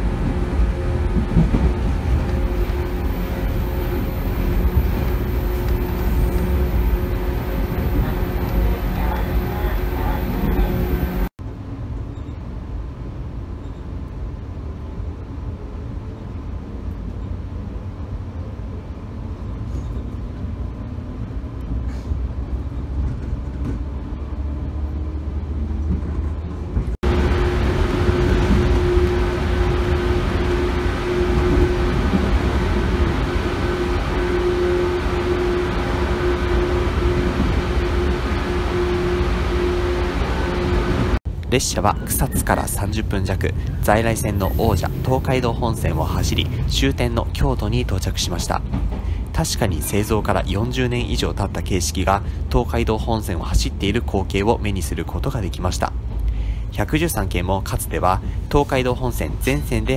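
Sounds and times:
steady humming tone: 0:00.0 - 0:11.3, 0:27.0 - 0:41.4
train wheels rumbling on rail: 0:00.0 - 0:59.9.

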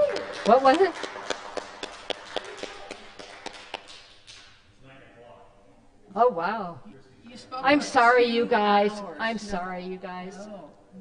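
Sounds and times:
audience clapping: 0:00.0 - 0:04.7.

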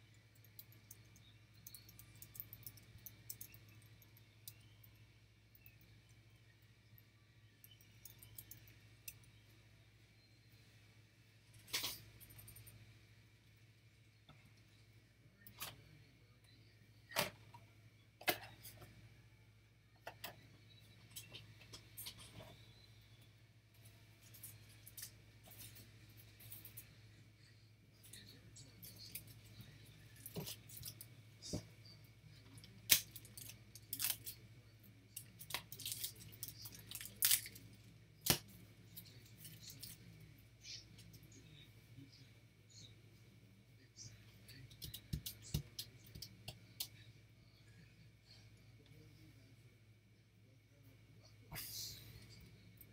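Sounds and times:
steady low hum: 0:00.0 - 0:52.9.

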